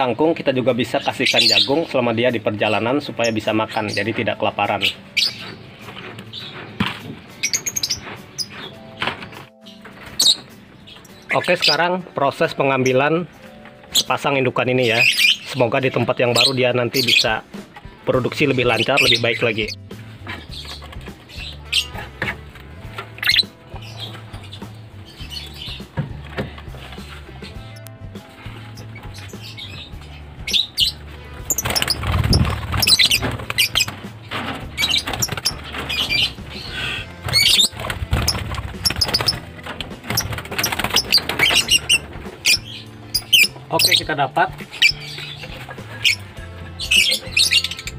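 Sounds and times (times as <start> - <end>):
birds squawking: 0.0 - 47.9
birds scuffling in wire cage: 2.6 - 11.8, 16.2 - 47.9
background music with beat: 17.2 - 47.9.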